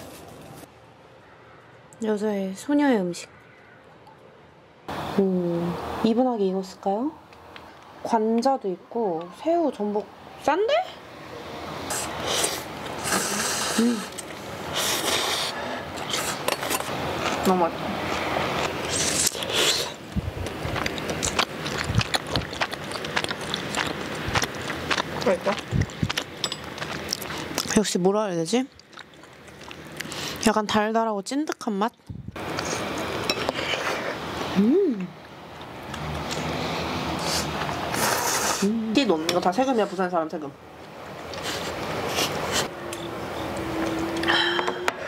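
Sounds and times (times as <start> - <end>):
noodles slurped: 11.9 - 17.5, 35.9 - 38.8
person humming mm: 13.0 - 14.2, 34.6 - 35.2, 38.2 - 38.9, 43.8 - 45.0.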